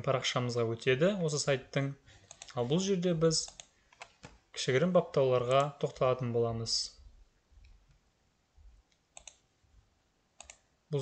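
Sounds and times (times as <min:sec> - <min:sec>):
faint computer mouse clicks: 0:02.2 - 0:02.6, 0:03.4 - 0:04.4, 0:08.9 - 0:09.4, 0:10.4 - 0:10.6.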